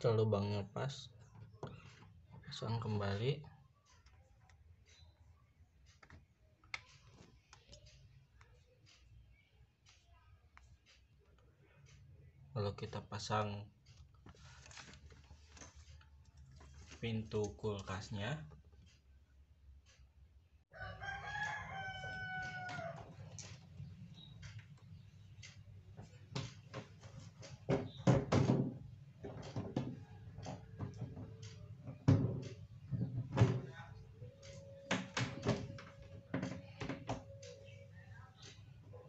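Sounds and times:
rooster crowing: 0:20.7 - 0:23.2.

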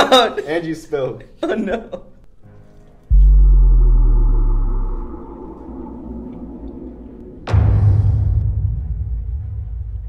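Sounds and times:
faint steady drone: 0:03.1 - 0:08.5
deep boom: 0:03.1 - 0:10.0.

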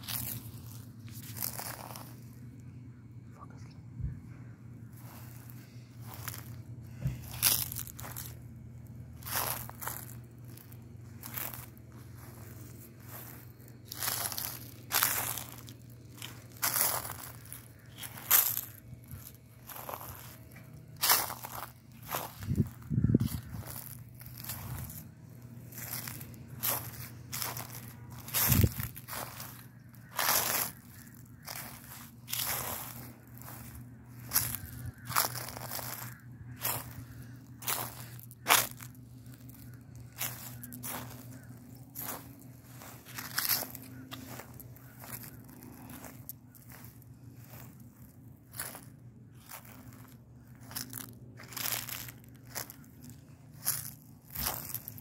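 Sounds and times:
footsteps crunching dry leaves: 0:00.0 - 0:03.2, 0:04.5 - 0:55.0.

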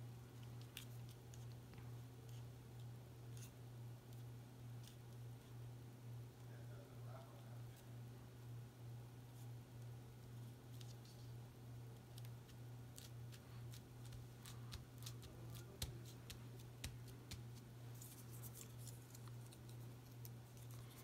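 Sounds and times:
steady low hum: 0:00.0 - 0:21.0
fingers tapping cardstock: 0:13.7 - 0:17.6.

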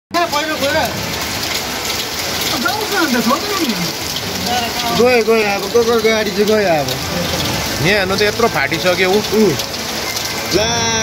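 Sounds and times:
steady rain on pavement: 0:00.1 - 0:11.0.

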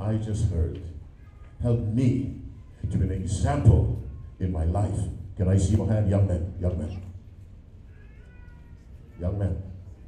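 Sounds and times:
faint high-pitched wavering cry: 0:07.8 - 0:10.0.

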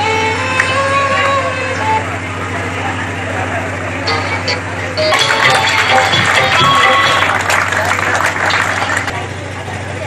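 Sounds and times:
murmur of crowd voices: 0:00.0 - 0:10.0
high-pitched tones: 0:04.1 - 0:07.5.

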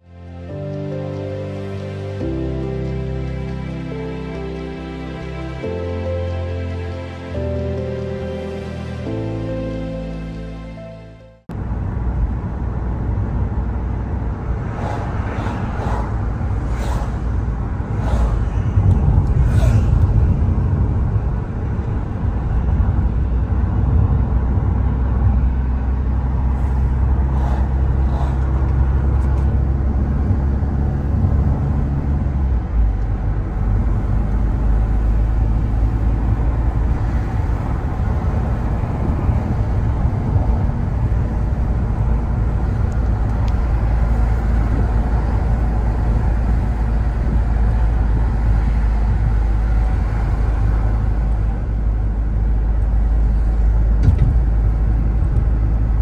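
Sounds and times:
car engine hum: 0:00.0 - 0:56.0
tyre and road rumble: 0:11.5 - 0:56.0.

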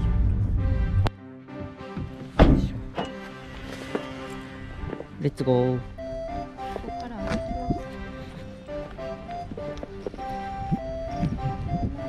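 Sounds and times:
car door shutting thud: 0:02.0 - 0:03.2.

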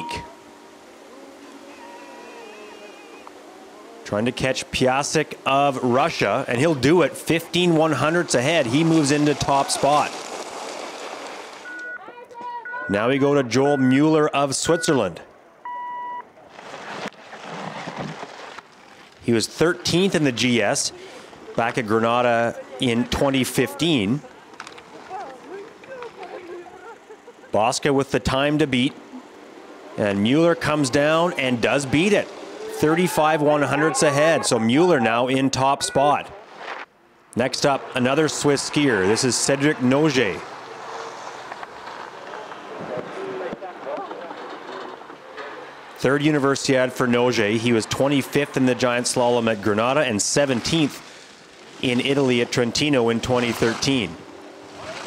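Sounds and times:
even outdoor hiss: 0:00.0 - 0:12.1, 0:16.2 - 0:55.0
skis carving on hard snow: 0:05.6 - 0:11.8, 0:16.5 - 0:26.9, 0:36.4 - 0:36.9, 0:37.5 - 0:55.0
short electronic beep: 0:11.6 - 0:12.0, 0:12.6 - 0:13.1, 0:13.7 - 0:16.3.

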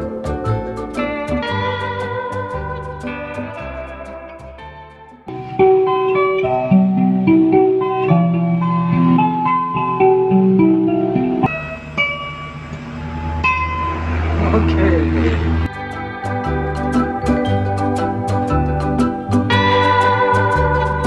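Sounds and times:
plucked zither melody: 0:00.0 - 0:21.0.

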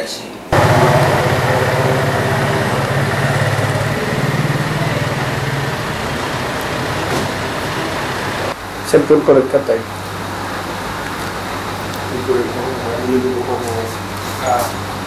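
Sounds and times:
engine idling hum: 0:00.6 - 0:08.8.

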